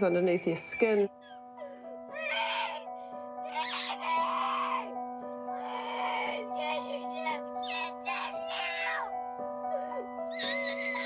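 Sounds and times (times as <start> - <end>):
background music sustained tones: 0.0 - 11.0
girl crying and wailing: 0.4 - 11.0.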